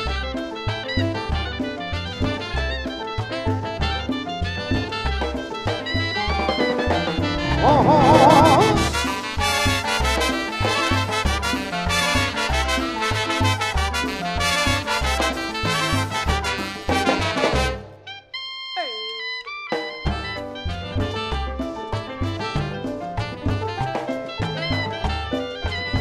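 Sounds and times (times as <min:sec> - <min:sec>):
tropical dance band playing: 0:00.0 - 0:26.0
note sliding down in pitch: 0:07.4 - 0:09.0.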